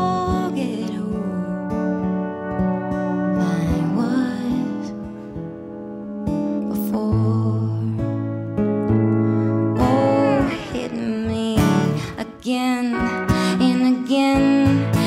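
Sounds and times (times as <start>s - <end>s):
pedal steel guitar: 0.0s - 15.0s
strummed acoustic guitar: 0.0s - 15.0s.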